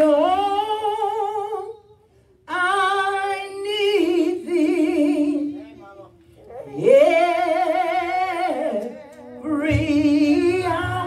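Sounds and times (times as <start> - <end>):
woman singing unaccompanied: 2.5 - 5.6, 6.6 - 11.0.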